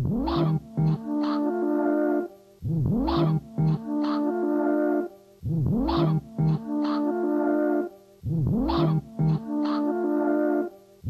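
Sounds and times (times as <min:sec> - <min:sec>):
synthesizer music: 0:00.0 - 0:02.3, 0:02.9 - 0:10.7.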